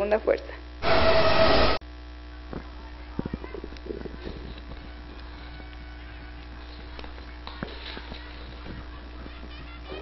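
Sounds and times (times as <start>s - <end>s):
electrical hum: 0.0s - 10.0s
distant voices: 2.5s - 10.0s.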